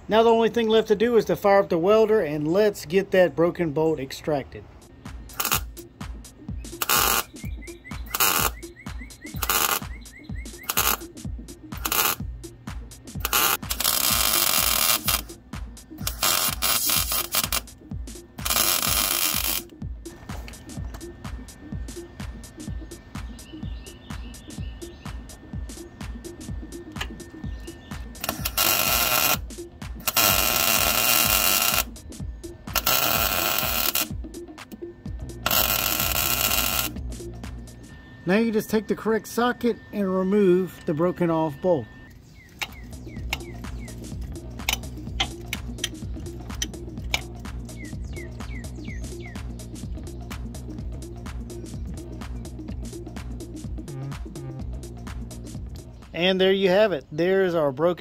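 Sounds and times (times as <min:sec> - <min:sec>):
background music with steady beat: 0:00.0 - 0:58.0
welder crackling: 0:05.2 - 0:41.6, 0:42.4 - 0:49.7.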